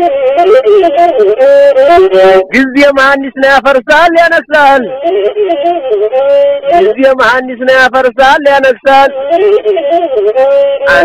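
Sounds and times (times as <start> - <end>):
person singing: 0.0 - 2.7, 4.6 - 7.6, 9.0 - 11.0.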